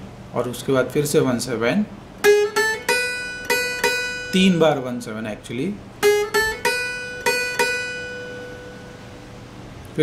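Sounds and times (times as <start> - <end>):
acoustic guitar picking notes: 2.0 - 9.9.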